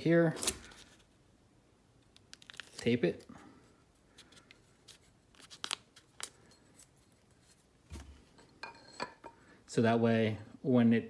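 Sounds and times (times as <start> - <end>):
tape tearing crackles and snaps: 2.0 - 3.3, 4.2 - 6.4.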